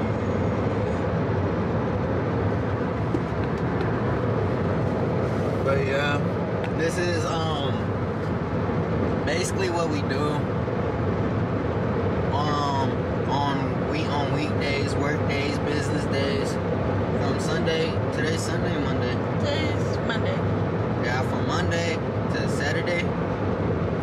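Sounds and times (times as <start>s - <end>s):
car road and engine noise: 0.0s - 24.0s
person talking: 12.3s - 16.6s, 17.2s - 20.4s.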